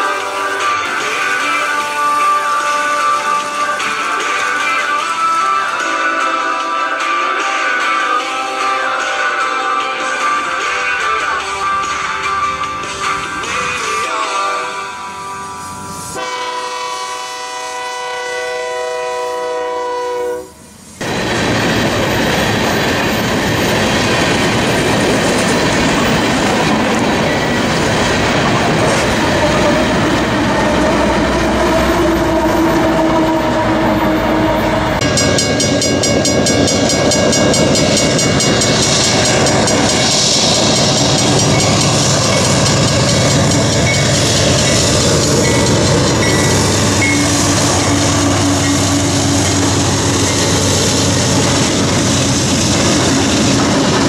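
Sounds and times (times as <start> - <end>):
background music: 0.0 - 16.4
diesel freight trains passing: 0.0 - 54.0
wheels rolling on rail: 20.5 - 54.0.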